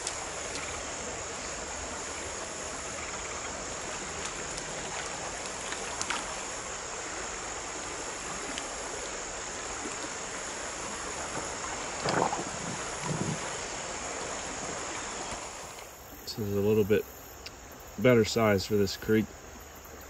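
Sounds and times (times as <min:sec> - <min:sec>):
creek water running: 0:00.0 - 0:20.0
high insect drone: 0:00.0 - 0:20.0.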